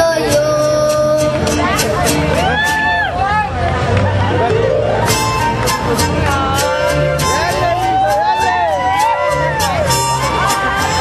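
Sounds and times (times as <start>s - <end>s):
boy singing into a microphone: 0.0s - 2.2s
crowd chatter: 0.0s - 11.0s
mariachi band playing: 0.0s - 11.0s.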